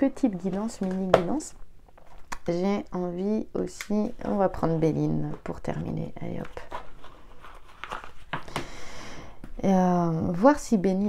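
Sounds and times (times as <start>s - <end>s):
cards rustling and clicking: 6.2s - 8.7s.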